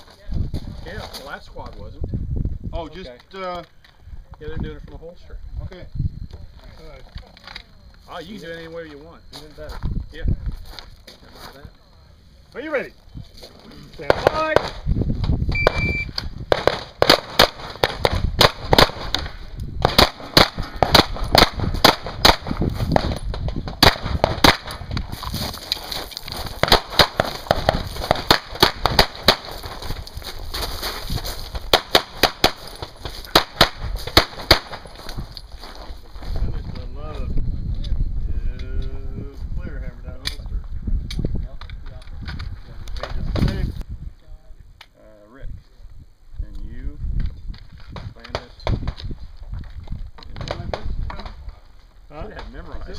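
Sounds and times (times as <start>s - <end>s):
rapid handgun fire: 16.5s - 23.2s, 23.8s - 24.9s, 26.6s - 29.7s, 31.7s - 34.9s.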